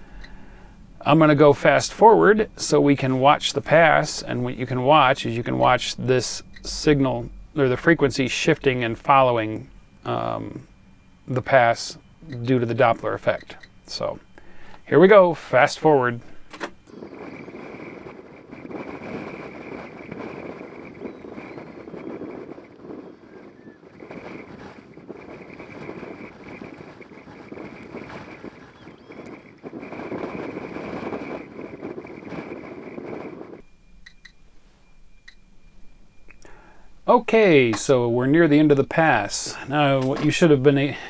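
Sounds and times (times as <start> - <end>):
faint static: 0.0 - 41.0
steady high tone over hiss: 0.0 - 41.0.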